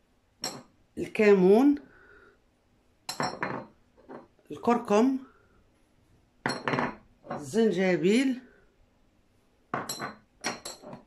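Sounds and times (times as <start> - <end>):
ceramic bowl clinking on countertop: 0.4 - 0.7, 3.1 - 4.2, 6.4 - 7.5, 9.7 - 11.0.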